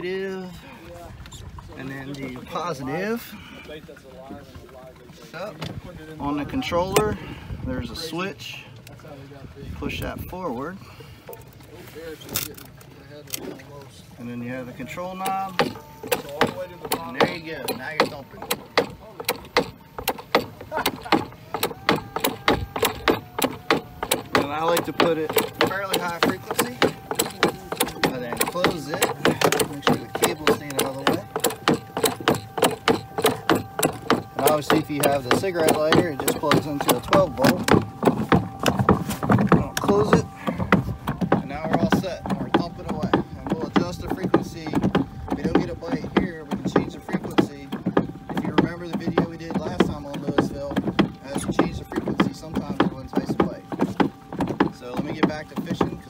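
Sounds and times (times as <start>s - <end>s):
mallet knocking on boat hull: 15.2s - 56.0s.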